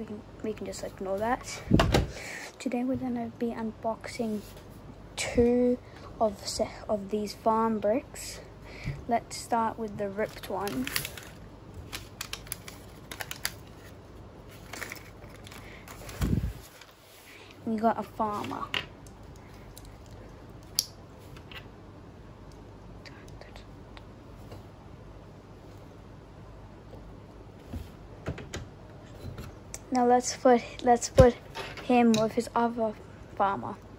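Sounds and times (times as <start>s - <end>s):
plastic packet crinkling: 10.3s - 16.9s.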